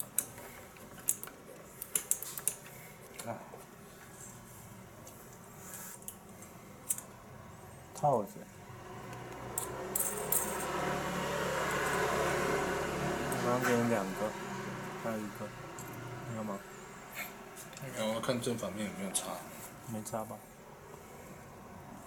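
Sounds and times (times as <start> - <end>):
steady low hum with hiss: 0.0 - 22.0.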